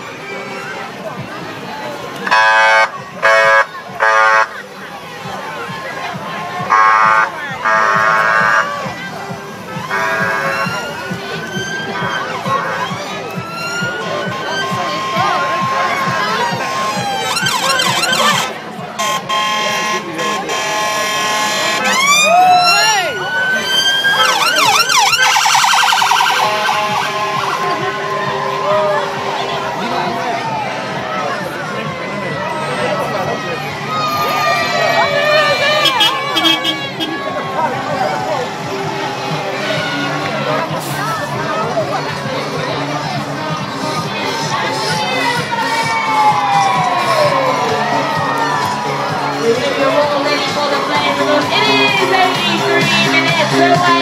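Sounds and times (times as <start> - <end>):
crowd cheering and shouting: 0.0 - 54.0
police sirens wailing and whooping: 0.0 - 54.0.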